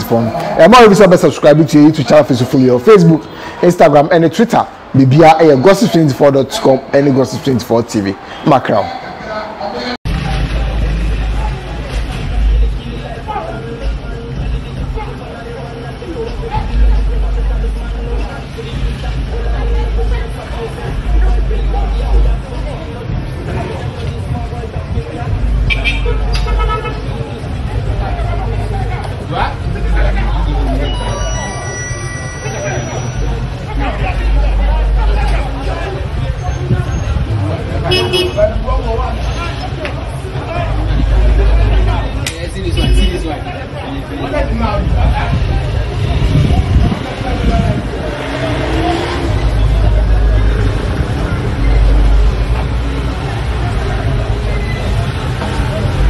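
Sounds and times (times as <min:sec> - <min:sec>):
people talking in background: 0:00.0 - 0:56.0
people's voices: 0:00.0 - 0:56.0
vehicle horn toot: 0:25.7 - 0:27.0, 0:37.9 - 0:38.5, 0:42.7 - 0:43.2.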